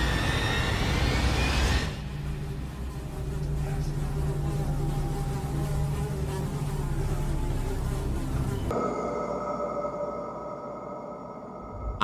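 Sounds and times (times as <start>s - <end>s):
low buzzing drone: 0.2s - 12.0s.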